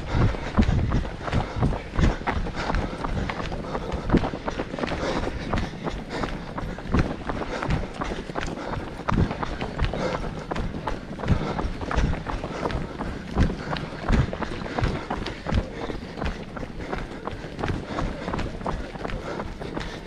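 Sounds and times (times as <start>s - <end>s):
running footsteps on tarmac: 0.0s - 20.0s.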